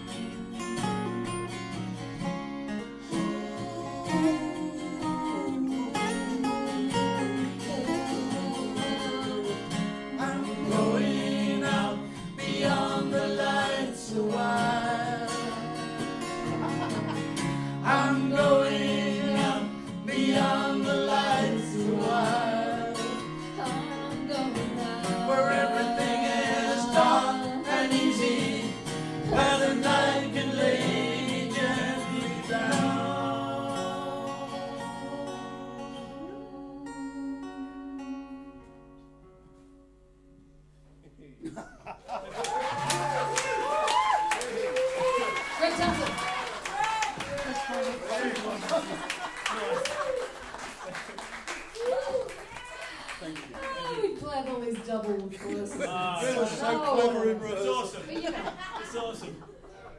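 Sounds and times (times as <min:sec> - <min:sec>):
acoustic guitars strumming: 0:00.0 - 0:40.9
group of voices singing: 0:03.0 - 0:38.2.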